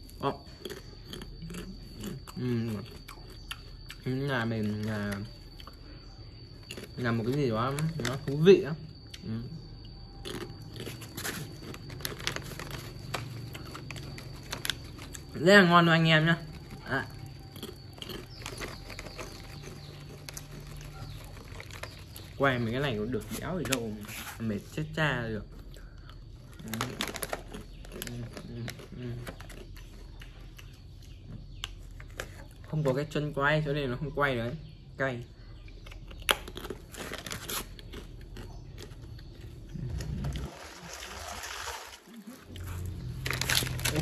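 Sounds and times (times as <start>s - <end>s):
crunchy chips being chewed: 0.0s - 24.4s, 25.6s - 32.9s, 35.7s - 44.0s
foil snack bag crackling: 10.8s - 17.2s, 36.8s - 38.1s, 40.3s - 44.0s.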